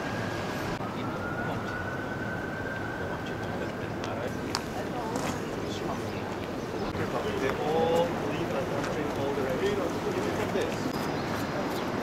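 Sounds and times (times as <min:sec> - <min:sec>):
indistinct voices of passers-by: 0:00.9 - 0:12.0.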